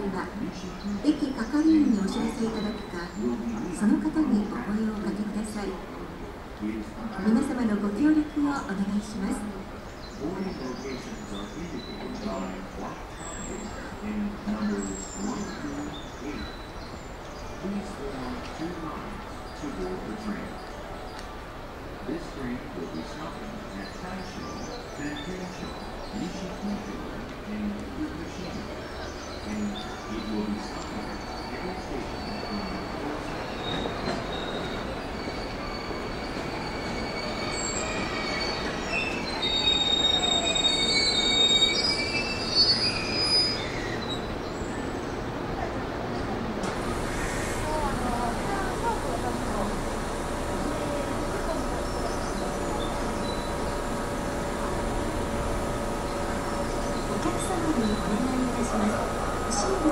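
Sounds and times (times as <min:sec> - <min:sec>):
electric train rumble: 0:00.0 - 0:59.9
people's voices: 0:00.0 - 0:59.9
faint high chirps: 0:28.2 - 0:45.2, 0:47.0 - 0:59.9
high-pitched brake squealing: 0:29.1 - 0:44.9, 0:46.8 - 0:59.9
falling whine: 0:46.6 - 0:59.9.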